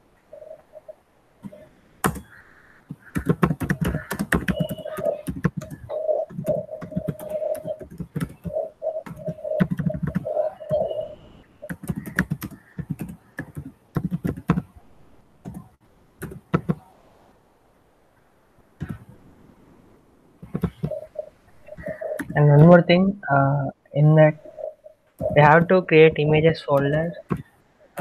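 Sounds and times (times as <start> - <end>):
computer keyboard typing: 1.4 - 2.3, 2.9 - 11.0, 11.6 - 14.6, 15.4 - 16.8, 20.4 - 21.1, 21.8 - 22.4.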